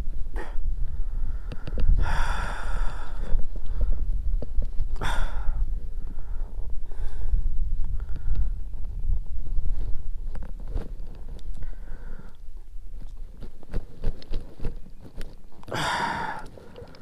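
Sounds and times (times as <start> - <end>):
wind buffeting microphone: 0.0 - 17.0
hands handling fish clicks: 12.2 - 17.0.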